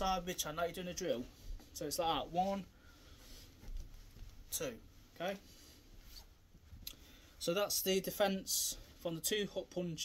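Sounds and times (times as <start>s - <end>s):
man speaking: 0.0s - 2.7s, 4.5s - 5.5s, 7.4s - 10.0s.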